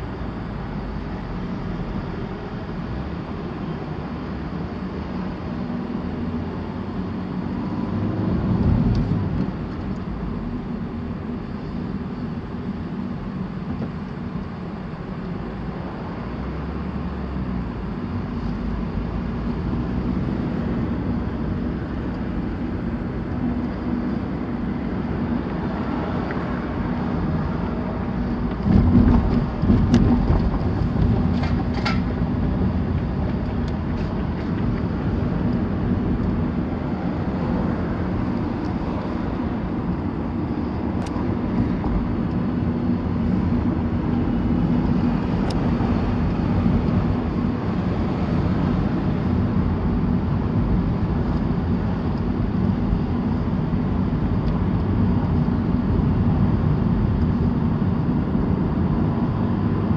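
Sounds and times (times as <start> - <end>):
car cabin road and engine hum: 0.0 - 59.9.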